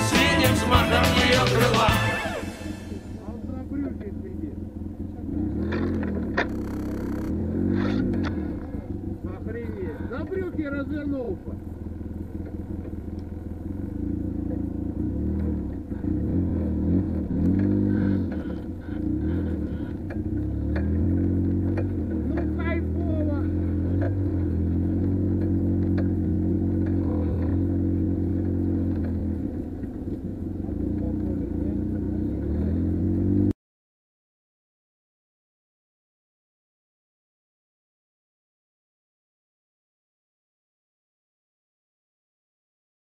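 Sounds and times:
quad bike engine revving: 0.0s - 33.6s.

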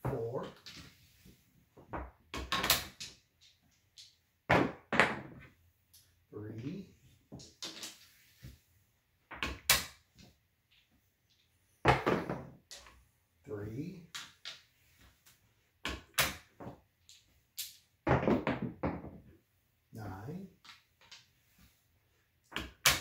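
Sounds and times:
dice clattering on a table: 7.3s - 8.1s.

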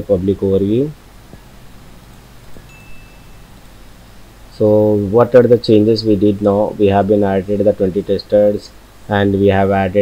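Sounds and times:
low hum and hiss: 0.0s - 10.0s
thin high ping: 2.6s - 4.2s.

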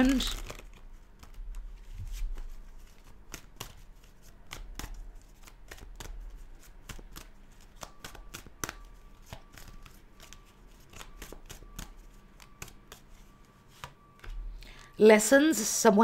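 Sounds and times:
cards shuffled by hand: 0.0s - 14.4s.

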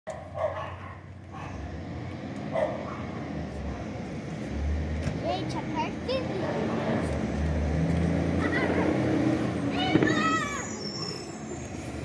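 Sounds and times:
dog barking: 0.1s - 1.6s, 2.5s - 3.2s.

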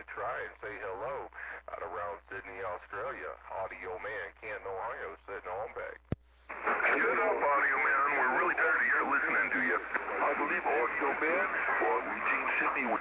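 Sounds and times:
man talking over two-way radio: 0.0s - 13.0s
radio transmission click: 6.0s - 13.0s.

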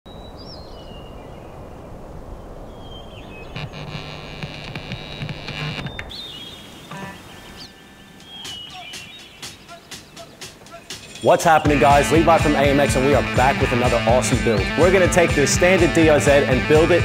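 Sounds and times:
birds chirping: 0.1s - 16.1s.

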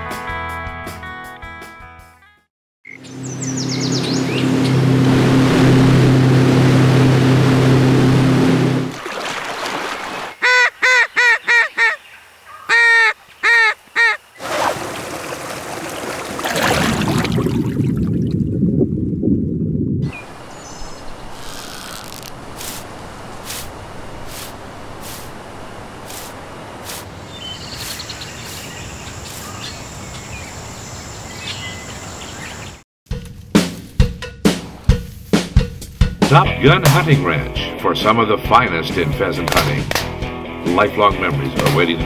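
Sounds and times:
low hum: 3.1s - 9.0s
loud rushing noise: 4.3s - 9.0s
duck call quacks: 10.4s - 12.0s, 12.6s - 14.2s.

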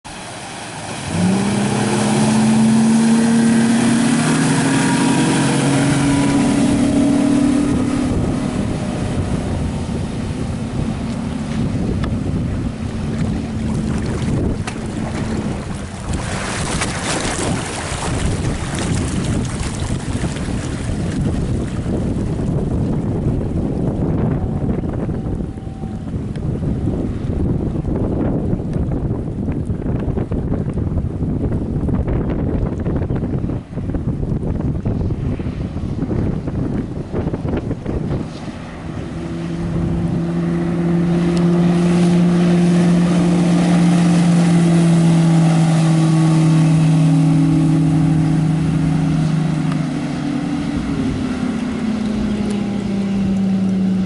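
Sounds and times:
wind and water rushing: 0.0s - 54.0s
outboard motor running: 0.1s - 54.0s
wind gust on microphone: 0.7s - 54.0s.

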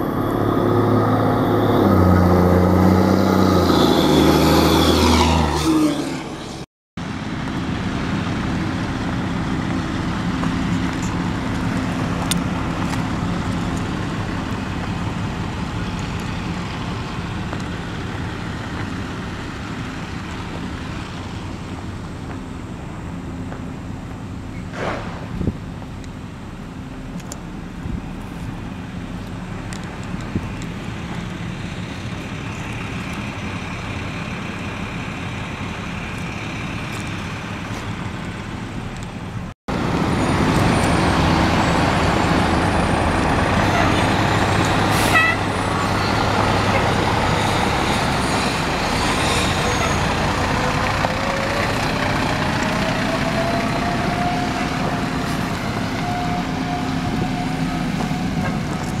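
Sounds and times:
heavy truck engines running: 0.0s - 59.0s
brief sharp blast: 24.7s - 25.4s
rising siren tone: 45.4s - 59.0s.

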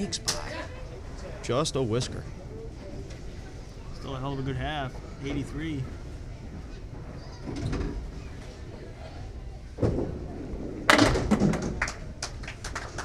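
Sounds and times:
bowling pins clattering: 9.8s - 12.2s.

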